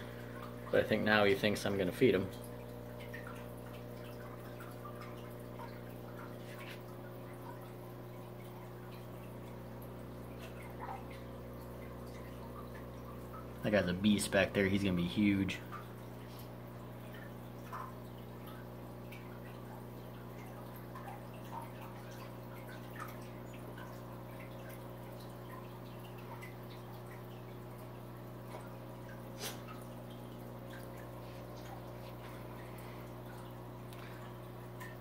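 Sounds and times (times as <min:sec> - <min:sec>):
aquarium pump humming: 0:00.0 - 0:35.0
water drips and splashes: 0:00.0 - 0:35.0.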